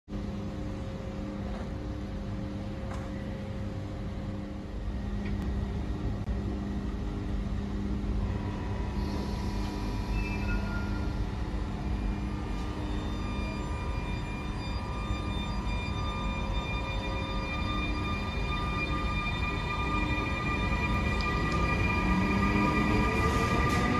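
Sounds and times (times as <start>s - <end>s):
electric locomotive rumble and whine: 0.1s - 23.9s.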